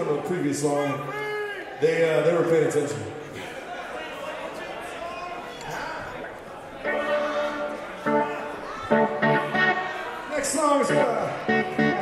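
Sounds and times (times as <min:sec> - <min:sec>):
electric guitar chords ringing: 0:06.9 - 0:10.0, 0:10.8 - 0:12.0.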